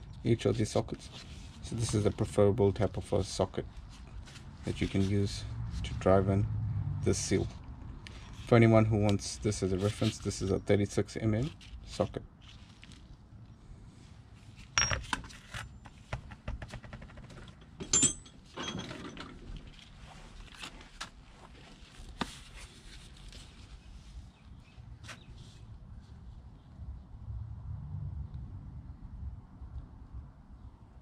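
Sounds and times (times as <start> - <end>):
tools clinking on workbench: 14.8 - 16.0, 17.4 - 19.4.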